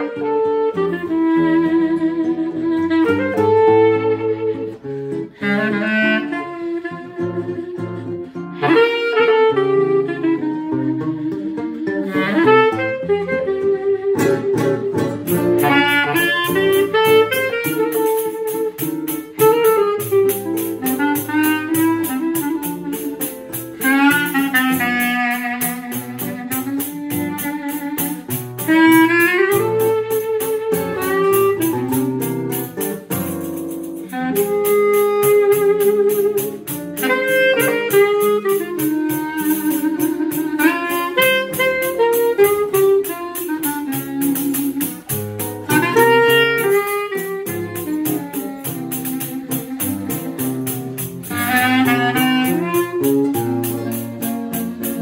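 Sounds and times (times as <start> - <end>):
clarinet melody: 0.0 - 55.0
nylon-string guitar chords: 0.0 - 55.0.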